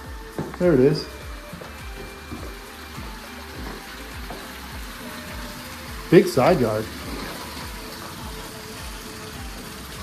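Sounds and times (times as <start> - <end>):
soft background music: 0.0 - 10.0
waterfall fountain splashing: 0.0 - 10.0.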